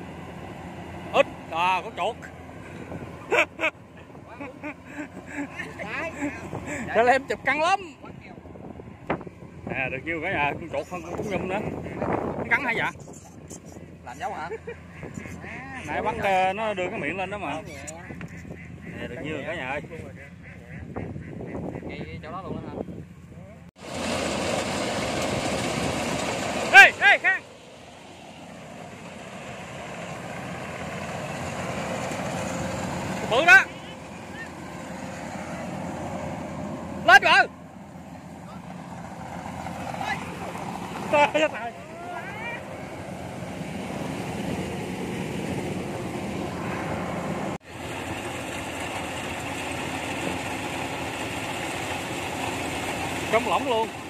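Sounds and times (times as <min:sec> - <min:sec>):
harvester engine running: 0:00.0 - 0:21.8, 0:23.0 - 0:54.0.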